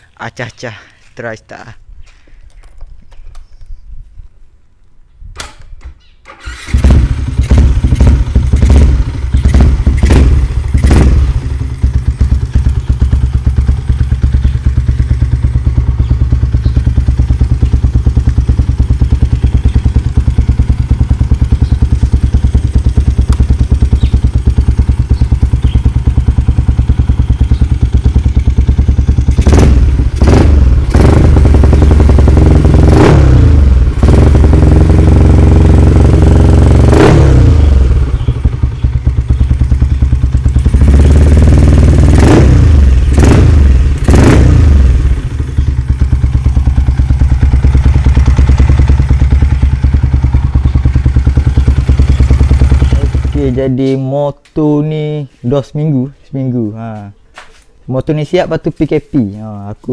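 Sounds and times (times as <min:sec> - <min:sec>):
motorcycle engine idling and revving: 0:06.3 - 0:54.0.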